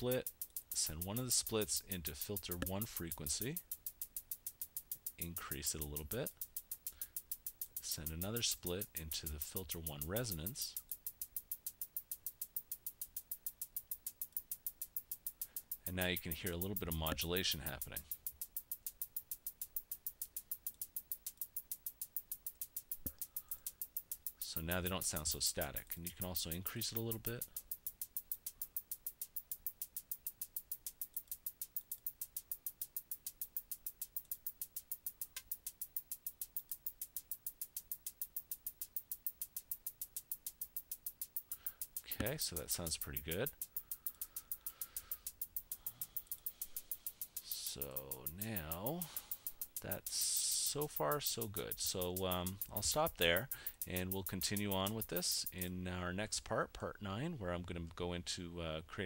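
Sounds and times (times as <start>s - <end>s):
synthesized hi-hat ticks: 0.0s - 59.0s.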